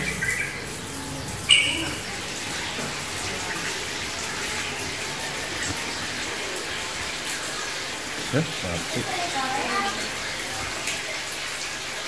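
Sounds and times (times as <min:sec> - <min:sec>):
running trickling water: 0:00.0 - 0:12.0.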